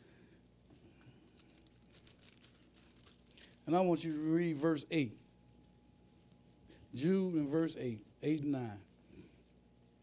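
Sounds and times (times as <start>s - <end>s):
pages turning: 1.4s - 3.6s.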